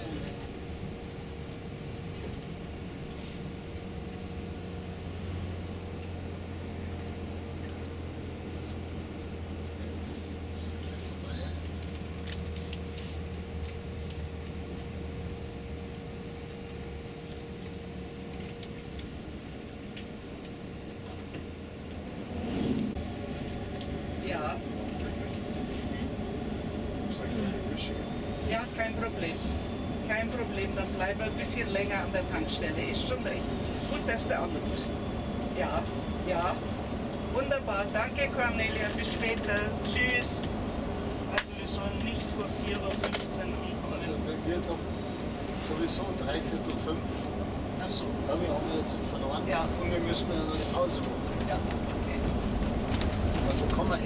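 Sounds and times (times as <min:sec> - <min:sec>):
bus engine and road noise: 0:00.0 - 0:54.0
low hum: 0:00.0 - 0:54.0.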